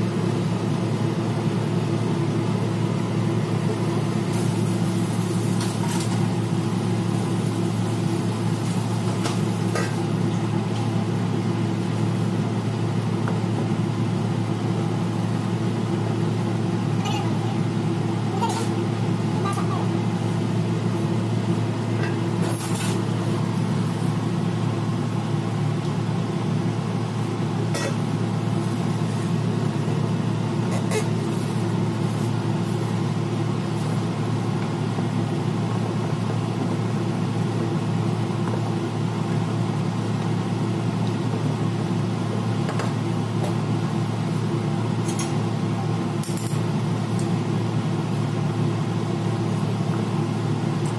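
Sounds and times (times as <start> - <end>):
low mechanical hum: 0.0 - 50.9.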